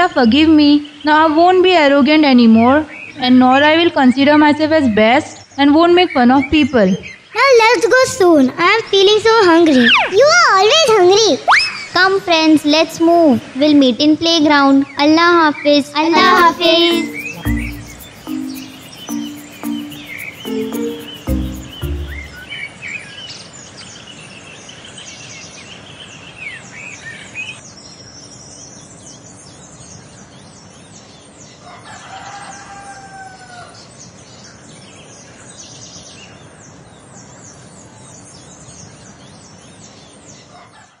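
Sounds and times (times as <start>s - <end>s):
small birds chirping: 14.8s - 22.6s
music track: 16.2s - 22.5s
rooster crowing: 31.9s - 33.7s.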